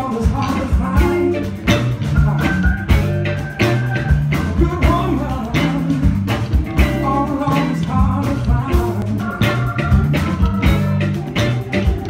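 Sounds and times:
bass lines: 0.0 - 12.0
electric guitar: 0.0 - 12.0
steady drumbeat: 0.0 - 12.0.

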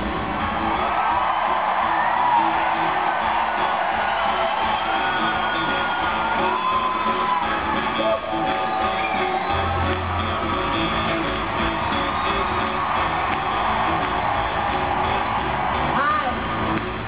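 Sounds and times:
crowd cheering and whooping: 0.0 - 17.0
live rock band: 1.7 - 17.0.

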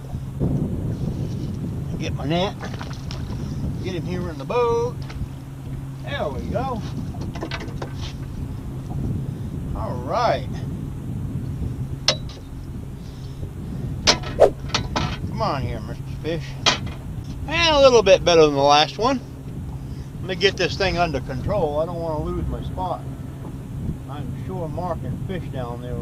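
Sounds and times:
steady low rumble: 0.0 - 26.0
wind buffeting microphone: 0.0 - 26.0
metal hoop clinking against boat: 1.4 - 9.2, 11.8 - 12.7, 14.0 - 19.8.

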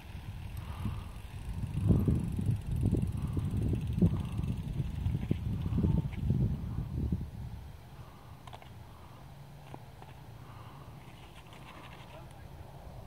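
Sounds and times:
wind rumbling on microphone: 0.0 - 8.4.

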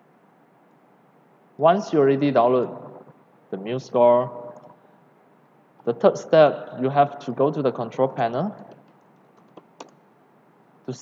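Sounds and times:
man's voice: 1.6 - 3.0, 3.6 - 4.6, 5.9 - 8.6
keyboard and mouse clicks: 8.6 - 10.0.

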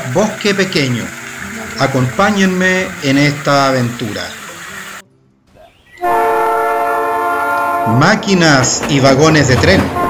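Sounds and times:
train horn chord: 6.0 - 8.3.

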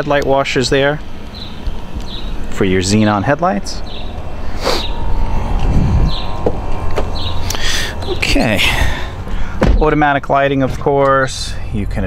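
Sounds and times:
low rumble: 0.0 - 10.9.

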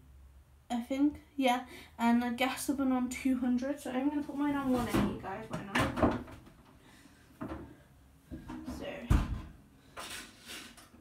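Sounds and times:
short scrapes: 10.0 - 10.9.

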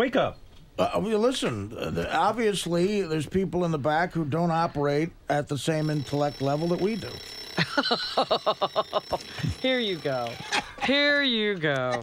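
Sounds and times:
woman laughing: 7.6 - 9.6, 10.3 - 11.1.

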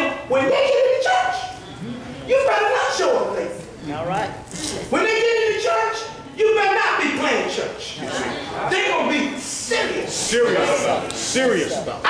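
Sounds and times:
man preaching in a large hall: 0.0 - 3.9, 4.6 - 12.0.

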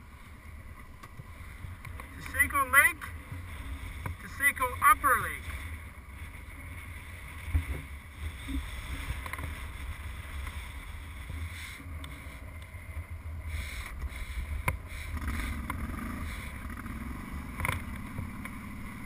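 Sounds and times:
atv engine running: 0.0 - 19.0.

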